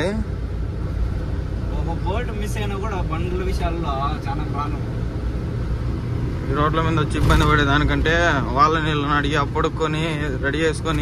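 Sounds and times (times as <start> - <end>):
road noise: 0.0 - 11.0
truck engine rumble: 0.0 - 11.0.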